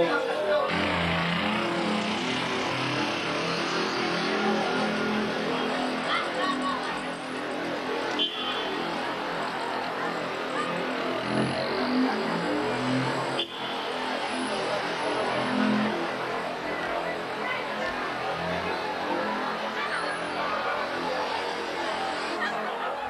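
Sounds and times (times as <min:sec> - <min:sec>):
crowd voices: 0:00.0 - 0:23.0
street traffic: 0:00.0 - 0:23.0.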